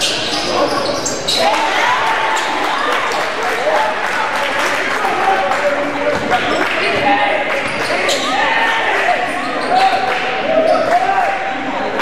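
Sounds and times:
sneaker squeaks: 0:00.0 - 0:03.3, 0:06.4 - 0:08.6, 0:09.3 - 0:11.0
voices echoing in gym: 0:00.0 - 0:12.0.

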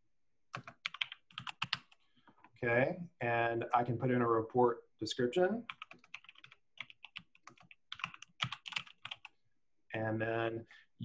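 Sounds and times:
typing on computer keyboard: 0:00.5 - 0:02.0, 0:05.7 - 0:09.3.

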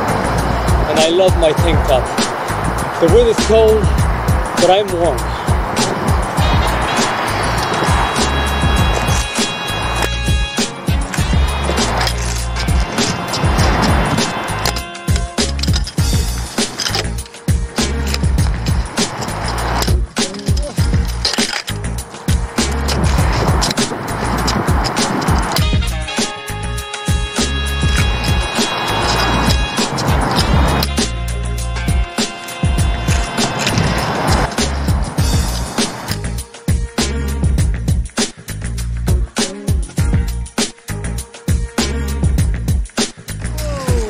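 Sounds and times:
skates rolling over asphalt: 0:00.0 - 0:26.4, 0:27.2 - 0:31.1, 0:31.9 - 0:36.4
background music: 0:00.0 - 0:44.0.

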